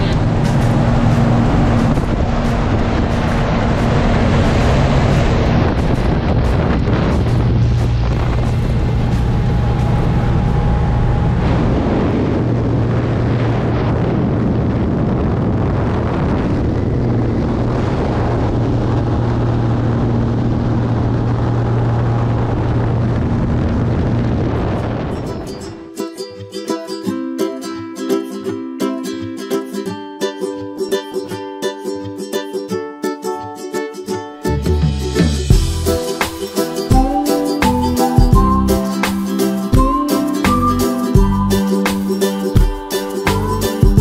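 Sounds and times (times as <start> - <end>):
propeller plane engine drone: 0.0 - 25.2
rushing wind: 0.0 - 26.1, 34.5 - 44.0.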